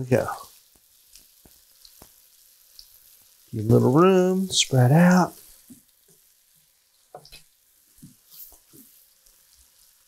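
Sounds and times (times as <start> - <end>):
crab cakes sizzling in oil: 0.0 - 10.0.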